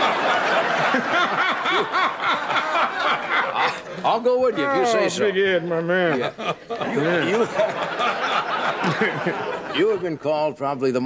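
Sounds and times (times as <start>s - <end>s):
studio audience laughter: 0.0s - 10.2s
man laughing: 0.8s - 5.0s, 6.0s - 9.8s.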